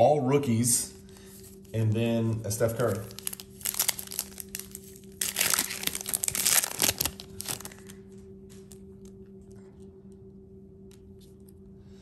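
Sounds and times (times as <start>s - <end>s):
wrapper crinkling and tearing: 2.5s - 9.1s.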